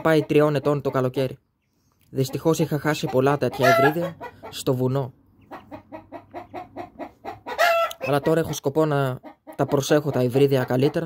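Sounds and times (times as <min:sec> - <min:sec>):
hen clucking: 0:00.0 - 0:01.4, 0:02.1 - 0:11.0
hen calling loudly: 0:02.2 - 0:04.7, 0:05.4 - 0:08.6.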